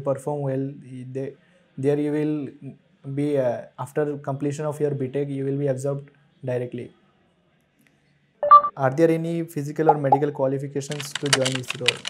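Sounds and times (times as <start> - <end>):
short electronic beep: 8.4 - 8.8, 9.9 - 10.2
person speaking: 9.8 - 12.0.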